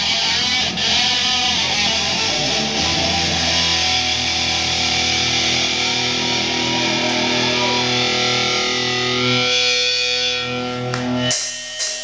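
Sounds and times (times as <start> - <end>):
distorted electric guitar chords: 0.0 - 12.0
live rock band playing: 0.0 - 12.0.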